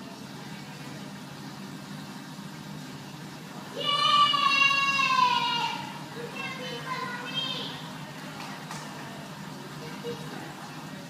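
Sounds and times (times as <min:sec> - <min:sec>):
aquarium equipment hum: 0:00.0 - 0:11.0.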